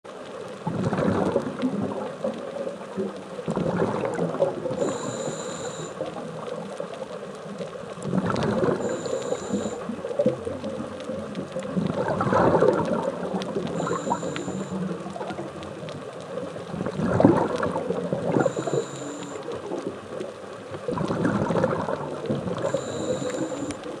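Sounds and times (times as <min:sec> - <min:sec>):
exhaled bubbles gurgling underwater: 0:00.1 - 0:24.0
faint high whistle: 0:04.8 - 0:06.0, 0:08.8 - 0:09.8, 0:13.8 - 0:14.8, 0:18.4 - 0:19.4, 0:22.6 - 0:23.8.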